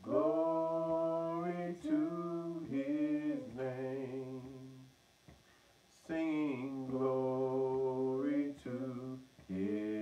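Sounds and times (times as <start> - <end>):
man singing a hymn unaccompanied: 0.0 - 5.0, 5.9 - 10.0.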